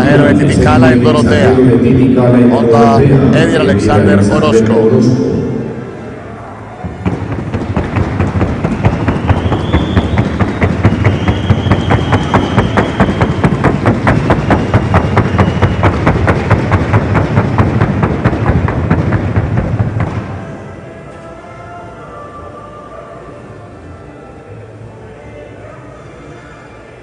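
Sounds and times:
hooves knocking on wooden board: 0:07.0 - 0:20.2.

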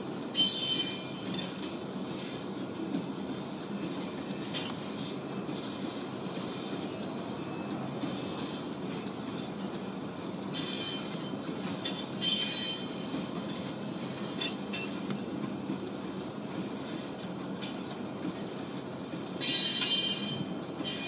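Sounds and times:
clicks of train wheels: 0:00.0 - 0:21.0
train wheels rumbling on rail: 0:00.0 - 0:21.0
wheel squeals: 0:00.3 - 0:01.8, 0:04.3 - 0:21.0.

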